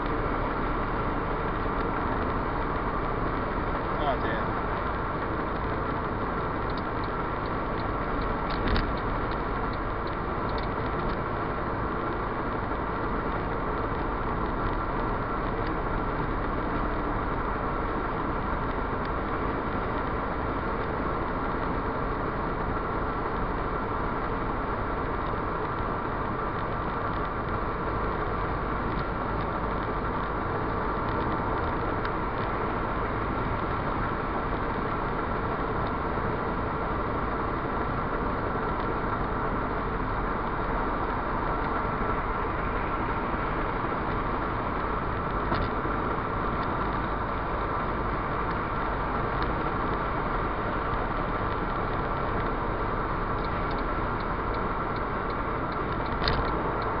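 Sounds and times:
car road noise: 0:00.0 - 0:57.0
engine hum: 0:00.0 - 0:57.0.

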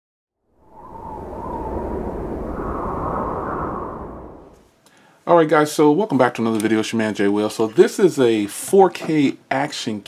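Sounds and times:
rushing noise: 0:00.6 - 0:04.6.

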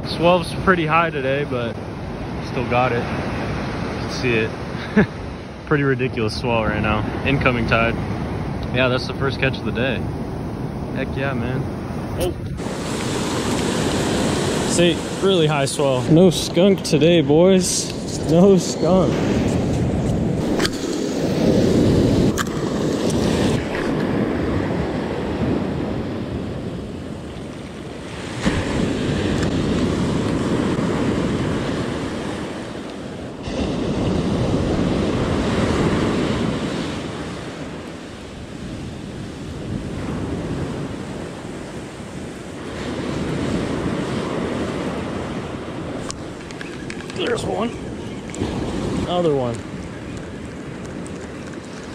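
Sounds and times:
ocean surf breaking: 0:00.0 - 0:51.9
wind on microphone: 0:00.0 - 0:51.9.

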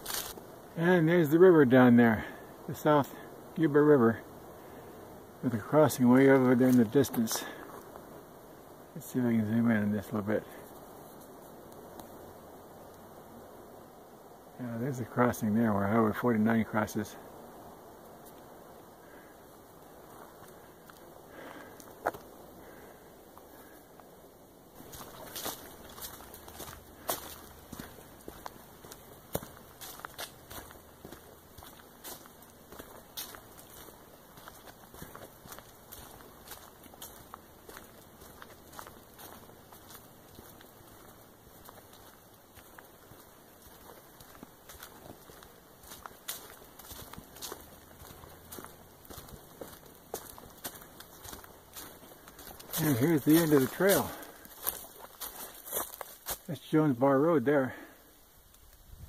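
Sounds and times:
footsteps on dirt trail: 0:00.0 - 0:12.2, 0:15.0 - 0:59.0.

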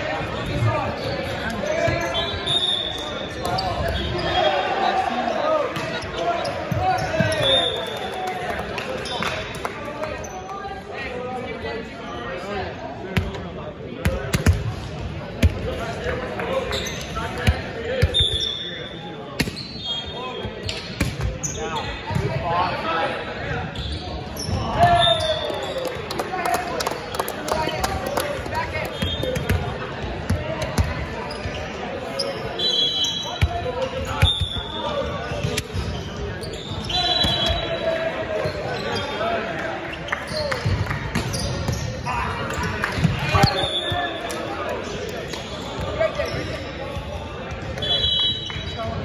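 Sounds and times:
players' voices and calls: 0:00.0 - 0:49.0.

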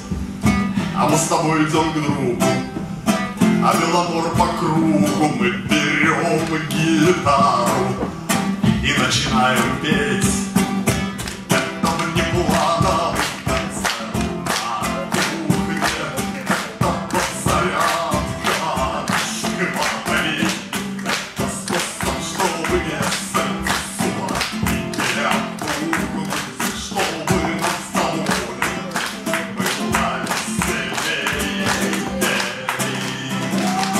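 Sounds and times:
man singing: 0:00.0 - 0:33.9
strummed nylon-string guitar: 0:00.0 - 0:33.9.

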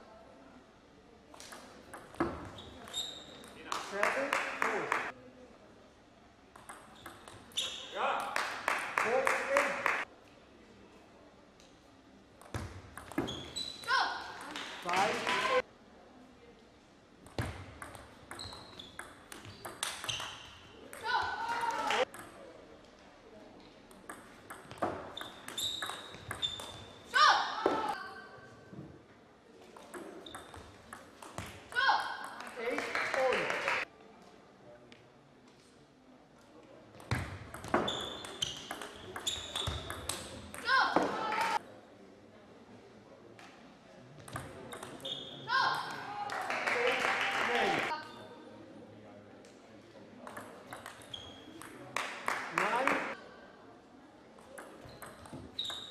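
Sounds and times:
table tennis ball clicking: 0:06.6 - 0:07.4.

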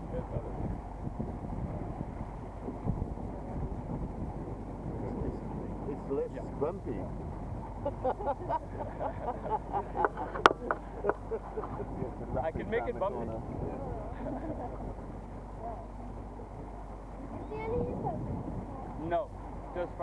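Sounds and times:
boat motor running: 0:00.0 - 0:20.0
voices talking: 0:03.1 - 0:20.0.

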